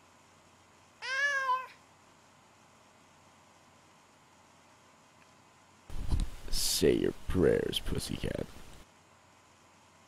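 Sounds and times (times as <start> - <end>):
cat meowing: 1.0 - 1.8.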